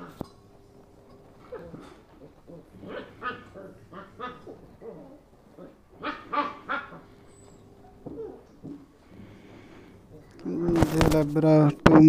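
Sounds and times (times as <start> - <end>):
puppies yipping and whining: 1.4 - 8.7.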